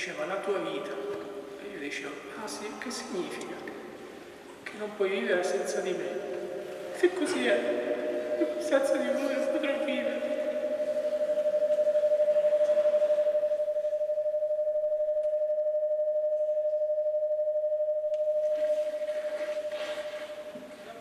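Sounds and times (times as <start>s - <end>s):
microphone feedback ringing tone: 7.4s - 20.8s.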